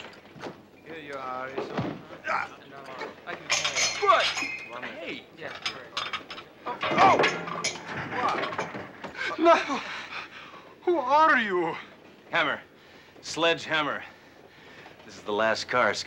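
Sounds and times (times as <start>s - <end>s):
clinks and knocks: 0.0s - 9.3s.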